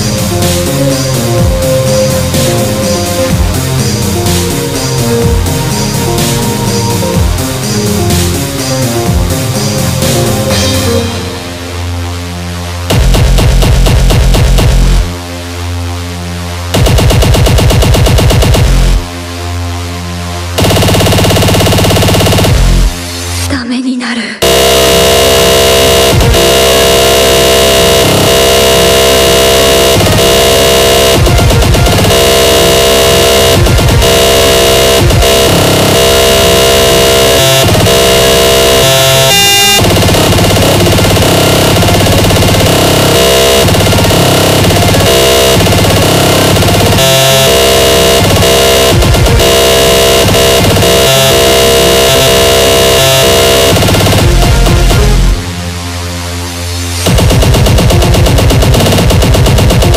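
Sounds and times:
extremely fast distorted electronic music: 0.0s - 23.8s, 24.4s - 59.9s.

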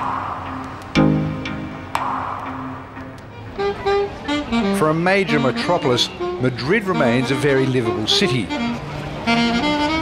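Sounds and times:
cars passing: 0.0s - 10.0s
instrumental background music: 0.0s - 10.0s.

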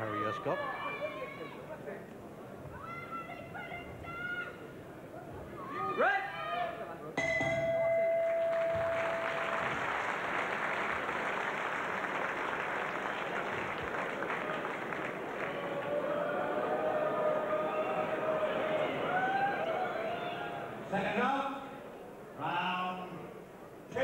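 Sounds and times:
boxing ring bell ringing: 7.2s - 9.4s
crowd applauding and cheering: 7.8s - 20.7s.

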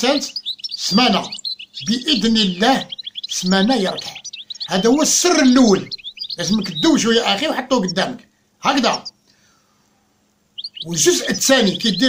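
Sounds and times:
bird chirps: 0.0s - 9.4s, 10.4s - 12.0s.

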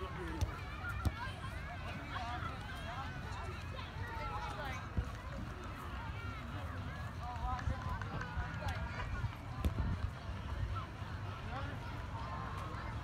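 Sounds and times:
children calling and chattering: 0.0s - 7.1s.

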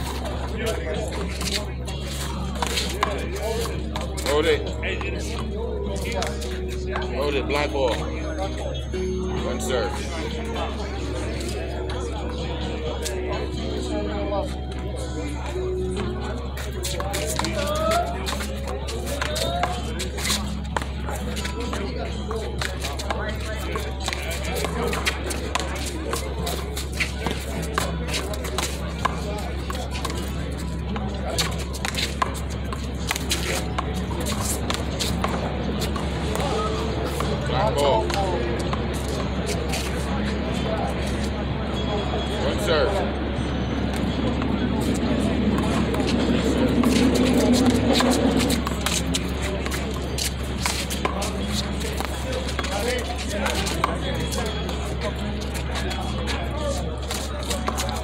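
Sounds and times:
voices: 0.0s - 58.0s.

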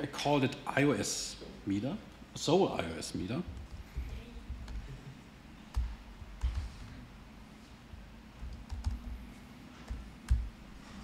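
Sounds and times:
typing on laptop keyboard: 5.7s - 6.8s, 8.4s - 9.2s, 9.9s - 10.5s.

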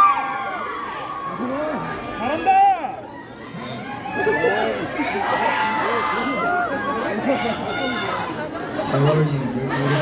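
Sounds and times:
audience chattering and calling out: 0.0s - 10.0s.

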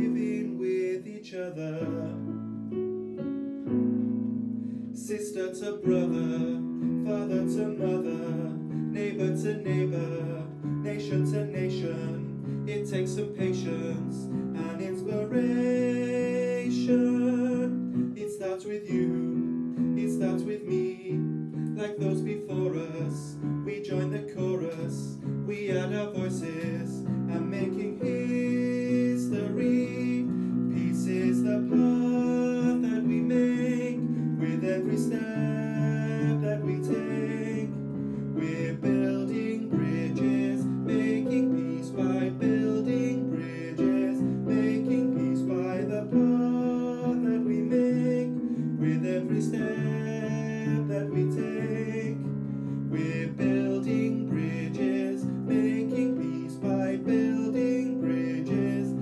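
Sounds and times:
man singing a gentle song: 0.0s - 3.2s, 4.8s - 59.0s
instrumental accompaniment: 2.2s - 5.0s.

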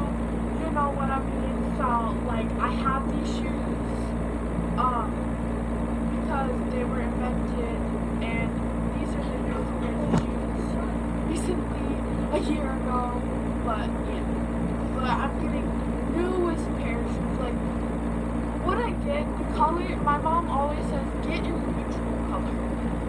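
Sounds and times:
girl speaking indistinctly: 0.0s - 4.1s, 4.8s - 5.3s, 6.1s - 17.7s, 18.6s - 23.0s
steady low hum: 0.0s - 23.0s.

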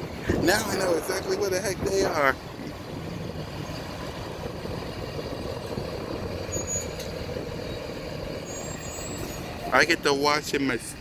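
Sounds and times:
large vehicle engine running: 0.0s - 11.0s
faint high squeaks: 6.4s - 7.2s, 8.4s - 9.8s.

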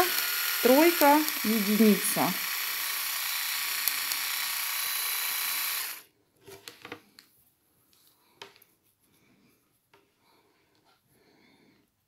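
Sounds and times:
electric manicure drill whirring: 0.0s - 6.0s.

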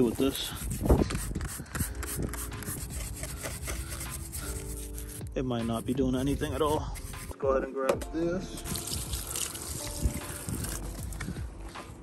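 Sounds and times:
wind rumbling on microphone: 0.0s - 3.3s, 9.0s - 11.7s
hose water splashing on metal: 8.7s - 10.8s.

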